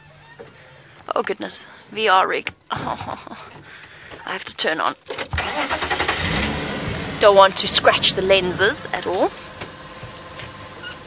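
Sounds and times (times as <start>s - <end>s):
vehicle engine starting: 5.1s - 11.0s.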